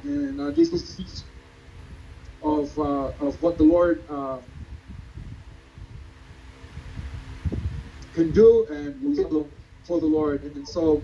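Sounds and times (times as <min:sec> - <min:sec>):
faint steady hum: 0:00.0 - 0:11.0
low uneven rumbling: 0:00.0 - 0:11.0.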